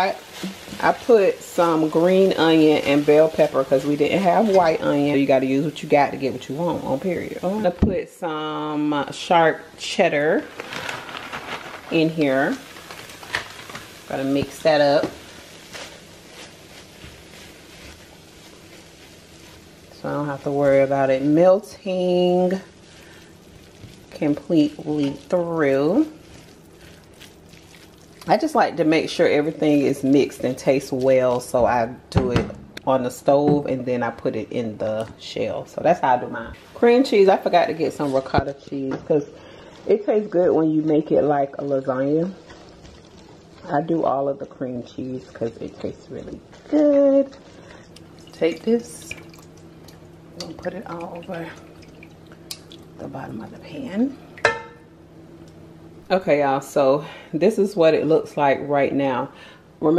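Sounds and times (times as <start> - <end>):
spatula scraping and squishing food: 0.0 - 6.3, 10.5 - 20.8, 21.9 - 28.4, 41.0 - 44.6, 45.2 - 48.2.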